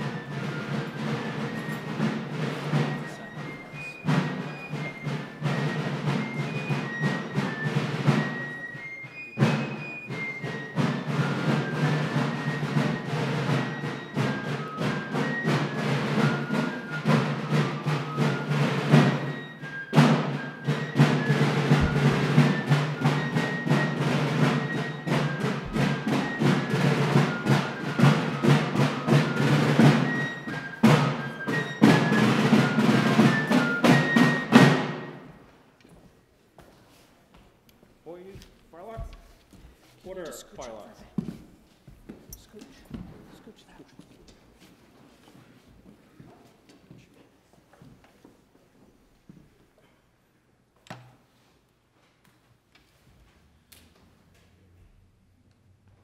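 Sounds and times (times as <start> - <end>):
steady drumming: 0.0 - 35.5, 38.0 - 43.8.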